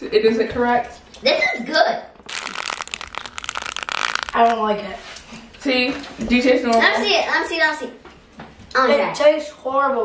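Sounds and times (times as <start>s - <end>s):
rapid crackling and crinkling: 2.2s - 5.0s.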